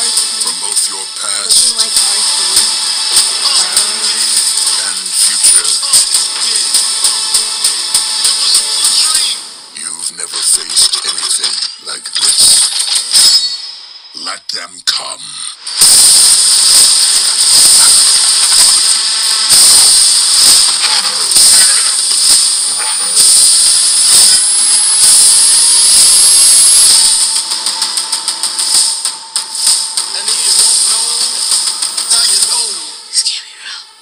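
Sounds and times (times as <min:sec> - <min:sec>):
movie trailer battle soundtrack: 0:00.0 - 0:33.8.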